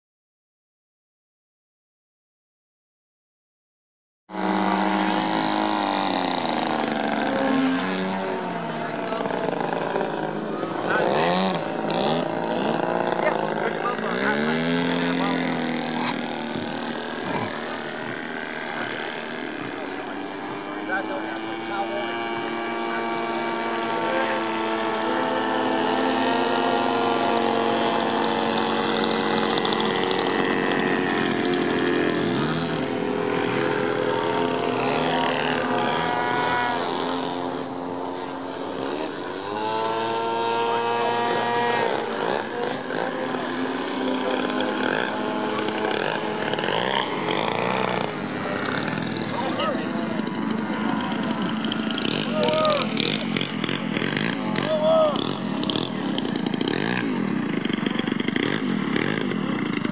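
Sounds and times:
model airplane engine and propeller: 4.3s - 59.9s.

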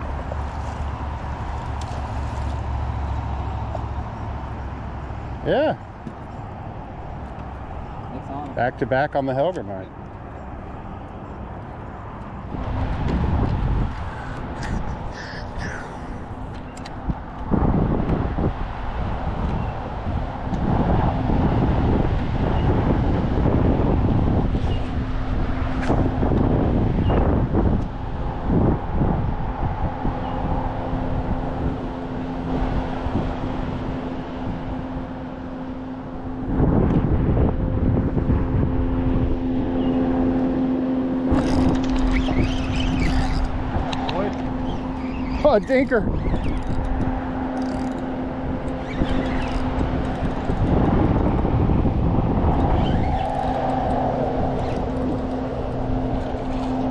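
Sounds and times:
wind rumble on microphone: 0.0s - 56.9s
electric trolling motor humming: 11.0s - 17.9s, 30.4s - 56.9s.

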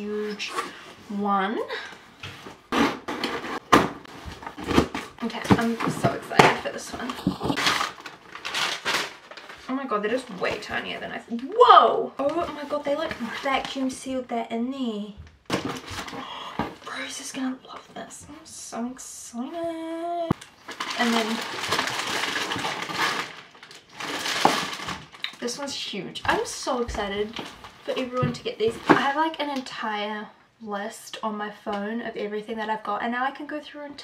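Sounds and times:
cardboard scraping and rustling: 2.3s - 9.7s.

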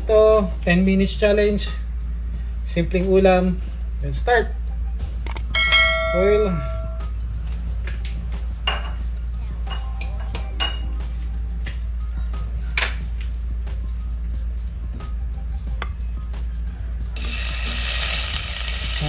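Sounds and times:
steady low hum: 0.0s - 19.0s
ginger sizzling in hot oil: 17.2s - 19.0s.

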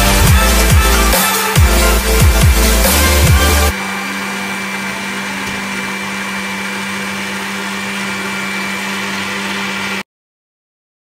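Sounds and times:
blender motor running: 0.0s - 10.1s.

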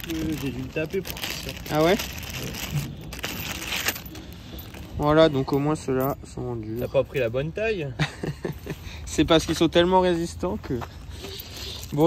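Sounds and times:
plastic bag crinkling: 0.0s - 4.9s.

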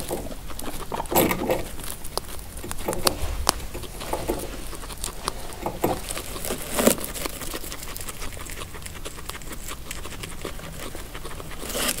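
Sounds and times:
guinea pigs chewing hay: 0.0s - 12.0s.

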